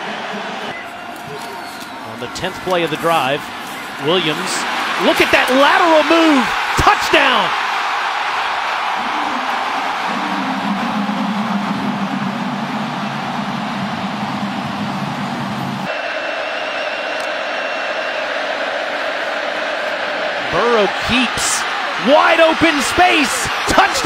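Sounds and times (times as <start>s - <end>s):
stadium crowd cheering: 0.0s - 24.0s.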